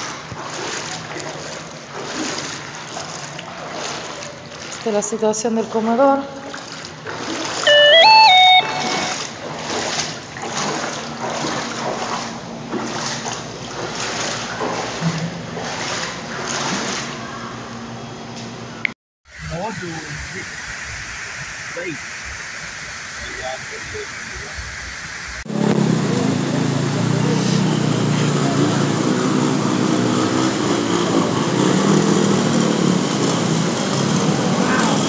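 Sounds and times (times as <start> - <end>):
floodwater rushing down street: 0.0 - 17.8, 19.4 - 35.0
water splashing from wading: 0.0 - 17.8
loud electronic tone: 7.6 - 9.4.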